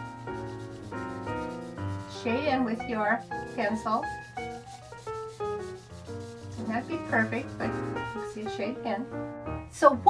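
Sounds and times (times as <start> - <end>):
marker scribbling on paper: 0.0 - 8.7
soft background music: 0.0 - 10.0.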